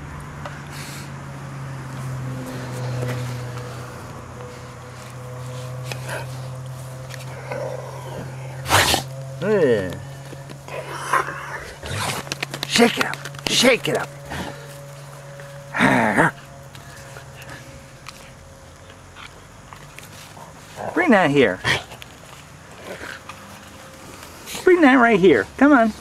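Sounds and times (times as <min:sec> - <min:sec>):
steady outdoor hiss: 0:00.0 - 0:26.0
faint rustling on grass: 0:00.5 - 0:15.7, 0:16.3 - 0:26.0.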